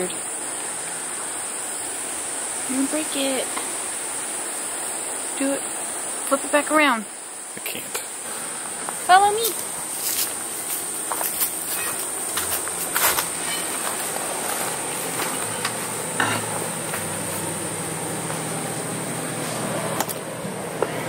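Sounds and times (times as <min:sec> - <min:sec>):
high-pitched insect drone: 0:00.0 - 0:19.5.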